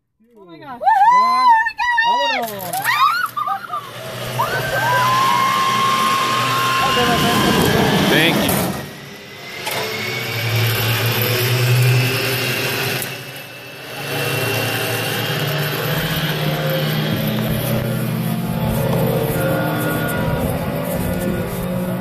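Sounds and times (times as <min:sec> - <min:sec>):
zip-line cable and trolleys humming: 0:00.9 - 0:22.0.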